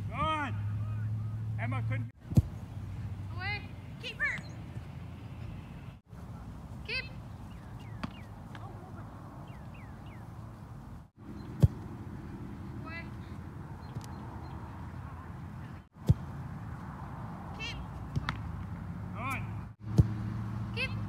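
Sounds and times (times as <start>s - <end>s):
soccer ball kick: 2.2s - 2.6s, 7.4s - 8.8s, 11.5s - 12.0s, 16.0s - 16.3s, 19.4s - 20.3s.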